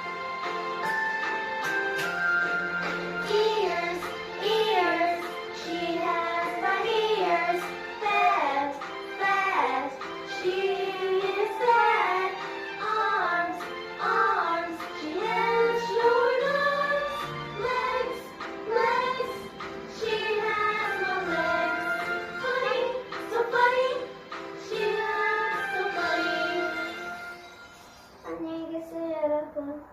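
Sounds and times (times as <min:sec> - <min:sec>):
music backing track: 0:00.0 - 0:29.9
child singing: 0:03.3 - 0:17.0, 0:28.2 - 0:29.9.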